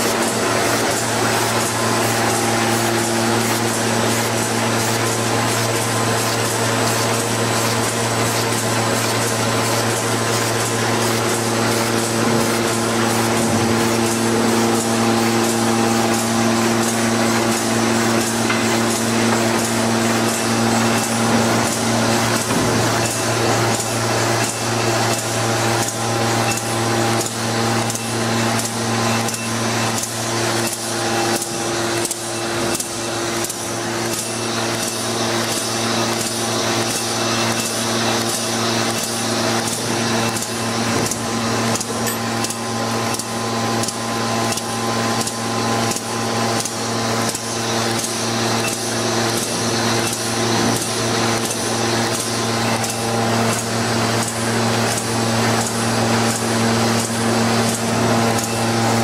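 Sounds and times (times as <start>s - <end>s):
machine motor hum: 0.0s - 59.0s
machine rhythmic clatter: 0.0s - 59.0s.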